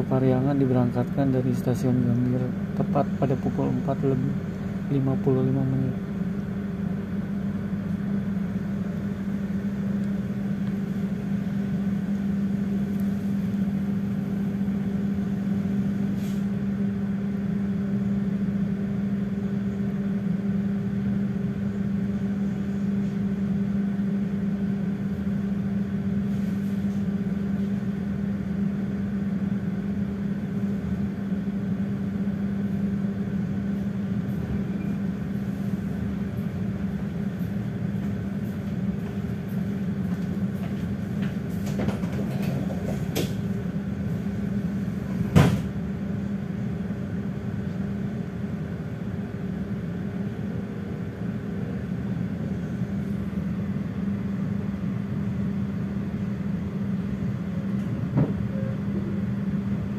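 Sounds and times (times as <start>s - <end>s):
train coach hum: 0.0s - 59.9s.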